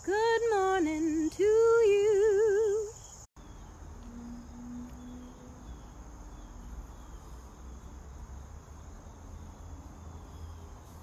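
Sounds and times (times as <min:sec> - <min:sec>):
faint insect chirping: 0:00.0 - 0:11.0.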